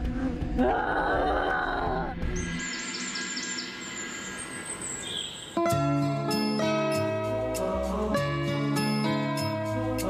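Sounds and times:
high bird chirps: 2.4s - 5.8s
chiming mallet percussion melody: 2.4s - 7.1s.

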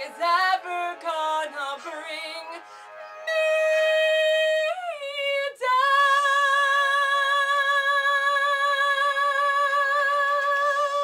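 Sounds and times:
woman singing long held notes: 0.0s - 11.0s.

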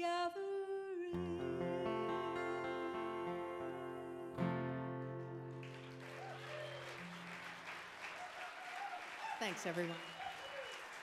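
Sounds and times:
person singing: 0.0s - 5.9s
acoustic guitar strumming: 1.2s - 7.6s
audience applause and cheers: 5.6s - 11.0s.

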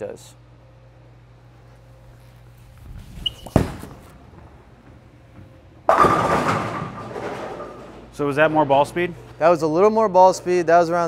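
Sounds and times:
bowling ball rolling: 2.6s - 9.2s
bowling ball thudding on lane: 3.2s - 8.2s
bowling pins crashing: 3.4s - 9.1s.

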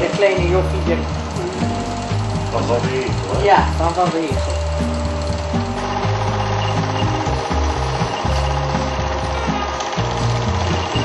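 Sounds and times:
film projector clattering: 0.0s - 11.0s
music with bass line: 0.0s - 11.0s.

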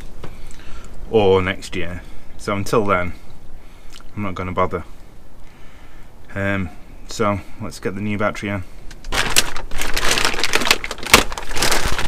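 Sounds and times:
plastic wrapping crinkling: 8.9s - 12.0s.

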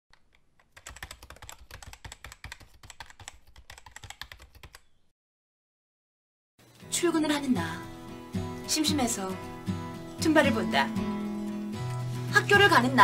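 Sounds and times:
rapid keyboard typing: 0.1s - 4.9s.

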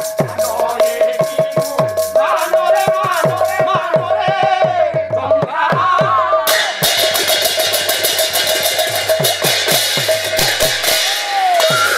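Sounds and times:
hand cymbals striking fast: 6.5s - 11.9s.

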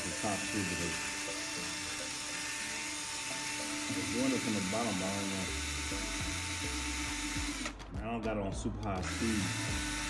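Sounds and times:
drill mixer motor whine: 0.0s - 7.8s, 9.0s - 10.0s.

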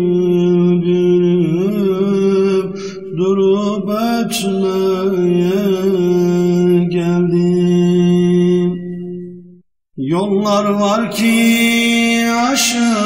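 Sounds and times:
ornamented singing voice: 0.0s - 9.4s, 10.0s - 13.0s.

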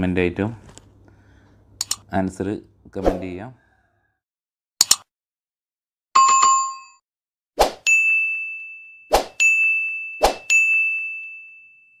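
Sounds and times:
bell-like dings: 7.9s - 12.0s.

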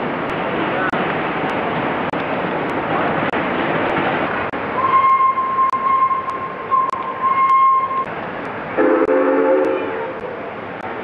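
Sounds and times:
high locomotive whistle blast: 4.8s - 8.1s, 8.8s - 10.1s.

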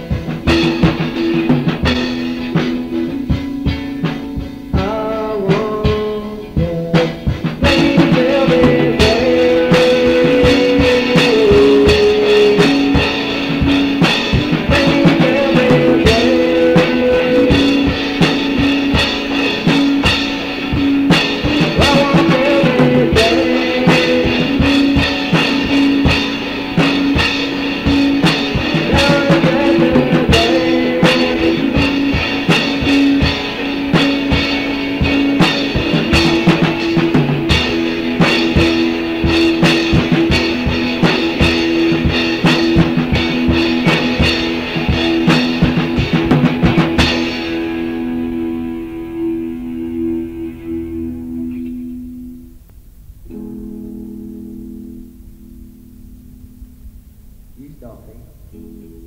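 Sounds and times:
busy rock drumming: 0.0s - 59.0s
held guitar notes: 0.0s - 59.0s.

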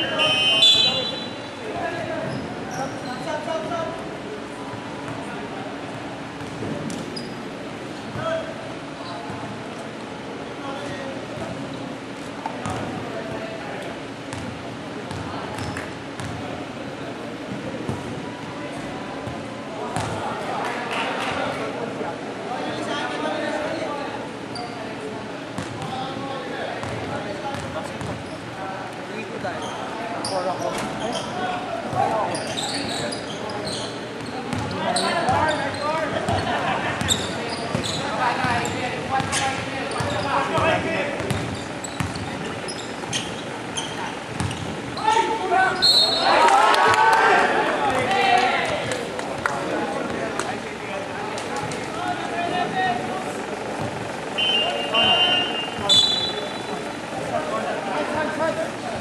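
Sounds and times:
players calling out: 29.6s - 58.8s.

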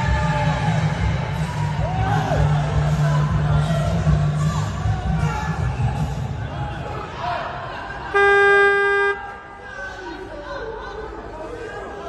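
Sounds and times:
crowd voices: 0.0s - 12.0s
electronic timing buzzer tone: 8.2s - 9.2s.

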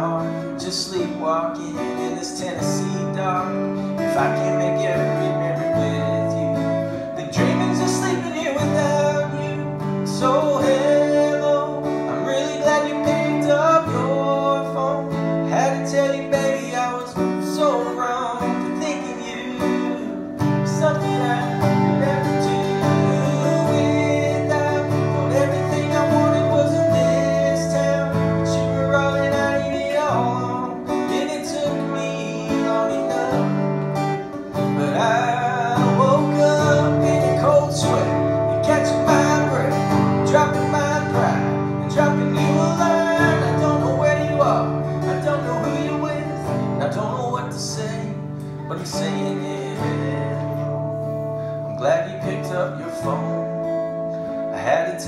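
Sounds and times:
acoustic guitar strumming: 0.0s - 55.0s
man singing: 0.0s - 55.0s.

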